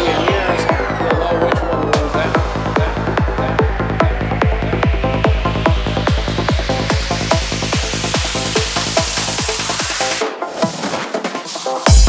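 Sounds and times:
driving kick drum: 0.0 - 10.0
rolling bassline: 0.0 - 10.2
high synth lines: 0.0 - 10.4.

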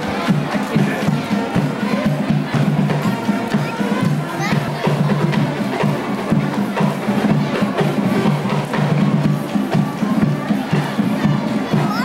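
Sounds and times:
band drums: 0.0 - 12.0
cheerleaders chanting in unison: 0.0 - 12.0
stadium crowd noise: 0.0 - 12.0.

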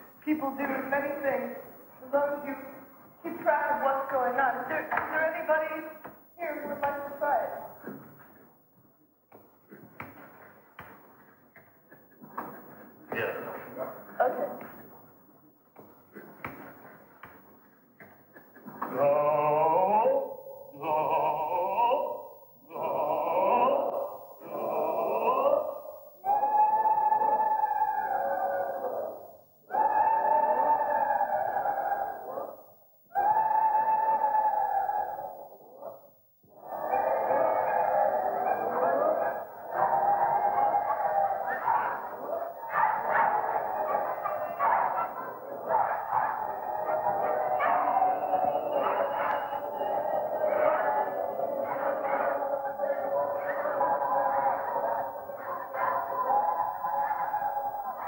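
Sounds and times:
group of people holding tones: 36.4 - 58.0.

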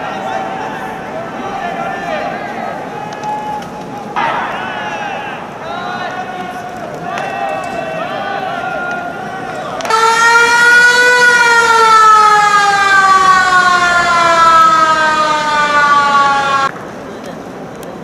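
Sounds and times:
stadium siren: 0.0 - 16.8.

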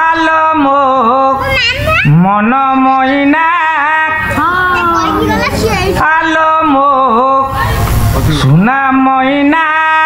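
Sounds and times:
high-pitched voice singing: 1.2 - 6.3.

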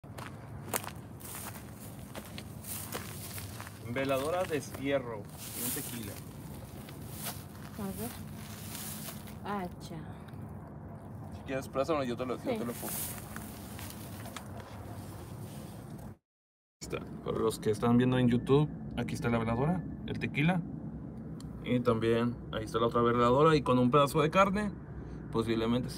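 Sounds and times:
footsteps on dry ground: 0.0 - 9.6, 12.6 - 15.9
dry vegetation rustling: 0.1 - 9.9, 12.3 - 16.1
low rumble with hiss: 0.2 - 14.2, 16.8 - 25.9.

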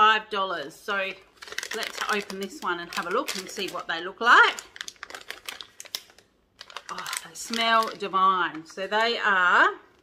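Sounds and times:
plastic pouch tearing open: 1.3 - 8.1.

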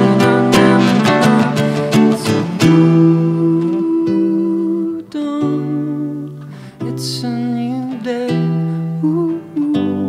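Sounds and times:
nylon-string guitar playing: 0.0 - 10.0.

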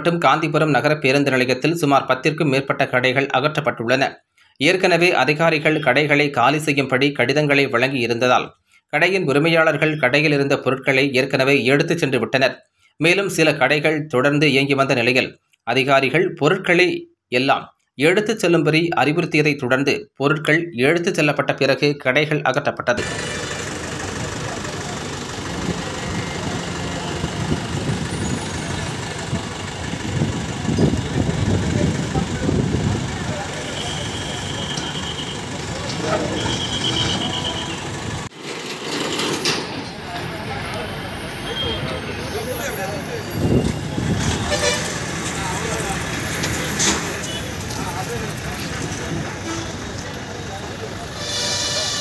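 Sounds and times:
people talking: 0.0 - 37.7, 39.8 - 52.0
heavy vehicle engines running: 23.0 - 52.0
short high-pitched tones: 33.6 - 38.0.

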